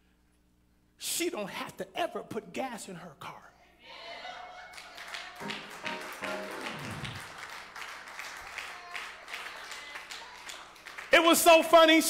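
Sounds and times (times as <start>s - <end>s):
soft keyboard notes: 5.4s - 7.2s.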